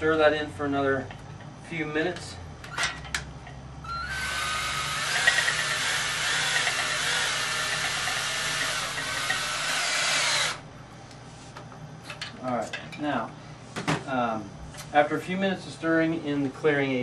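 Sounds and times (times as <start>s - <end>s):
electric drill motor whir: 3.8s - 10.6s.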